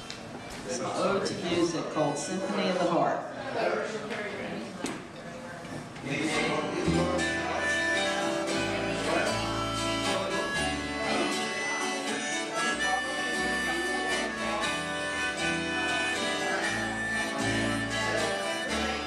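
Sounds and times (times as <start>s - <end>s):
acoustic bass guitar: 6.2s - 19.0s
strummed acoustic guitar: 6.2s - 19.0s
harmonica melody: 6.4s - 19.0s.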